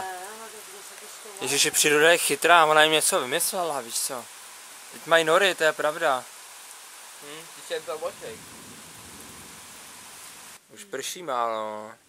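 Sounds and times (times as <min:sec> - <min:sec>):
light rain falling: 0:00.0 - 0:12.0.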